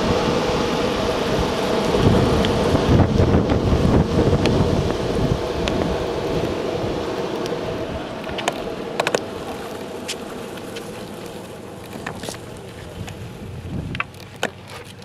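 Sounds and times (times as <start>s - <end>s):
wind on microphone: 0.0s - 9.1s, 12.0s - 14.1s
longboard wheels on asphalt: 0.0s - 15.0s
board clicks: 8.2s - 11.0s, 13.9s - 15.0s.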